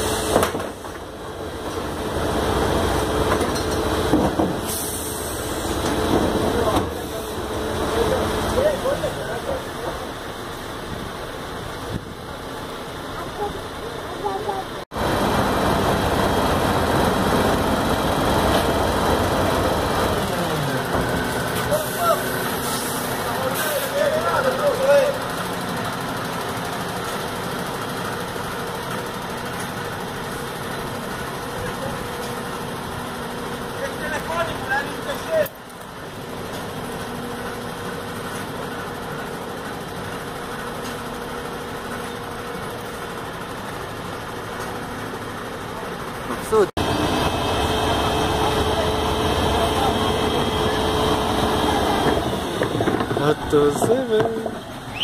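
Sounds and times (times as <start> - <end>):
garbage truck engine and drum: 0.0 - 12.8, 14.2 - 35.3, 36.1 - 55.0.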